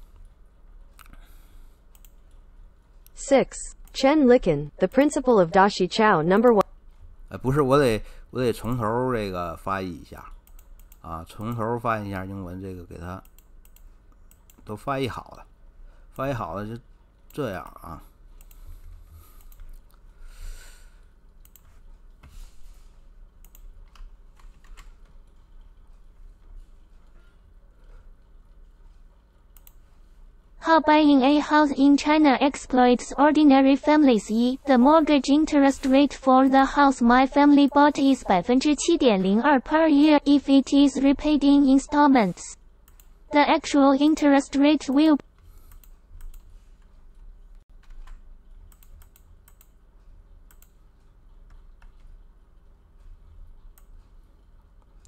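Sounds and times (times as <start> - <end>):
computer keyboard keystrokes: 1.9 - 2.4, 10.3 - 11.6, 13.1 - 14.7, 18.4 - 18.6, 19.4 - 20.0, 21.4 - 22.3, 23.3 - 26.0, 28.2 - 29.8, 45.6 - 49.8, 50.4 - 54.1
mouse clicks: 13.2 - 14.6, 18.4 - 18.6, 21.4 - 22.2, 23.4 - 25.0, 29.5 - 29.8, 50.5 - 50.8.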